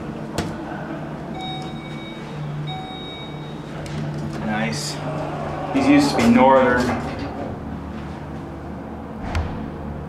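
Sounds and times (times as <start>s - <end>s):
elevator electronic chime: 1.3s - 3.9s
elevator button click: 1.4s - 4.0s.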